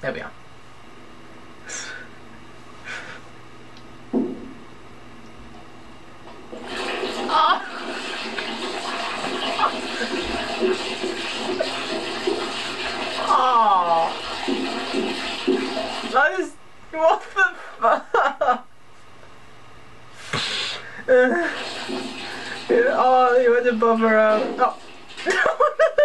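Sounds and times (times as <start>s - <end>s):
low steady hum: 0.0s - 26.0s
rushing water-like noise: 6.6s - 13.3s
person speaking: 16.1s - 17.7s.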